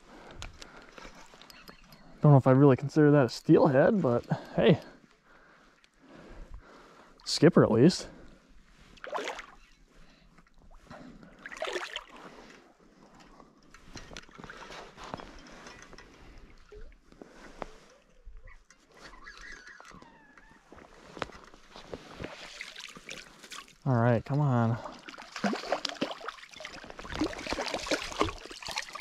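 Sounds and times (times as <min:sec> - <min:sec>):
fish splashing in water: 0:25.0 - 0:29.0.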